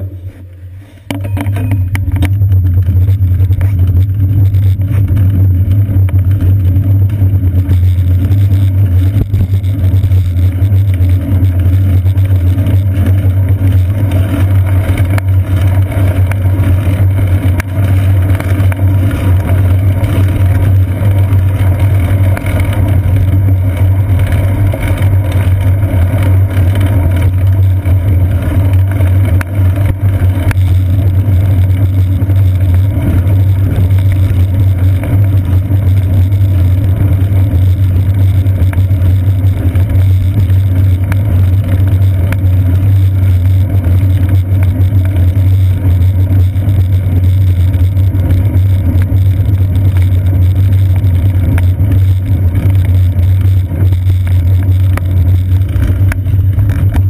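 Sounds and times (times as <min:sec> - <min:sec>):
wind and road rumble: 0:00.0 - 0:57.0.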